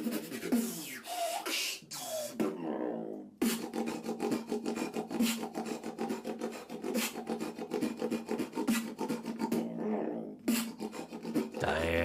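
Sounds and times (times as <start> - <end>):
person beatboxing: 0.0 - 2.6, 3.4 - 9.8, 10.5 - 12.0.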